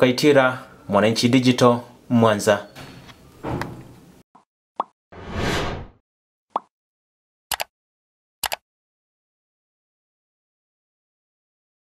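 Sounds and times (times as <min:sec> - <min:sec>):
whoosh: 0:05.2 - 0:06.0.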